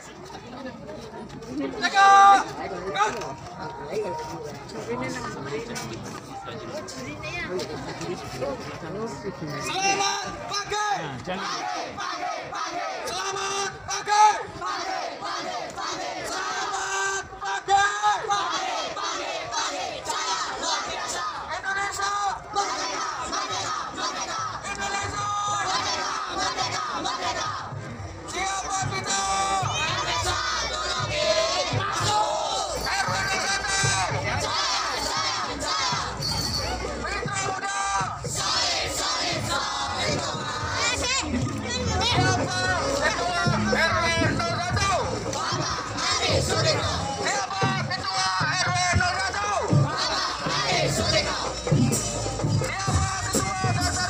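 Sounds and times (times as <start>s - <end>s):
group shouting a chant: 11.3s - 21.6s, 22.5s - 27.7s, 49.4s - 51.6s
young people chanting a cheer: 11.3s - 52.0s
people shouting: 28.3s - 51.6s.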